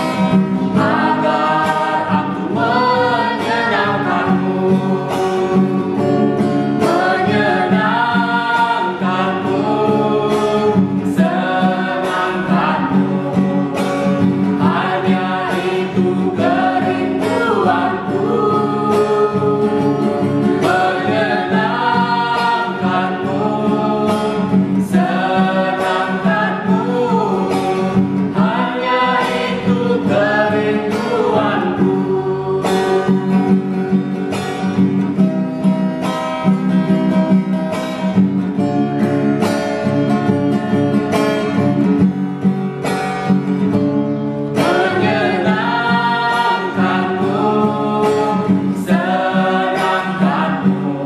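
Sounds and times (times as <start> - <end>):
group singing a worship song: 0.0 - 37.5, 38.2 - 51.0
strummed acoustic guitar: 0.0 - 51.0.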